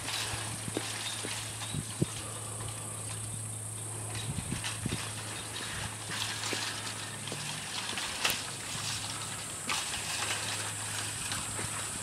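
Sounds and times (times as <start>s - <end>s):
footsteps climbing steps: 0.0s - 12.0s
steady high hiss: 0.0s - 12.0s.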